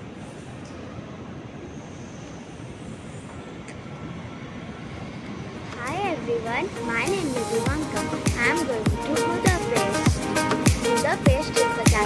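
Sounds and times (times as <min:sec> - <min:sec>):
low rumbling station noise: 0:00.0 - 0:12.0.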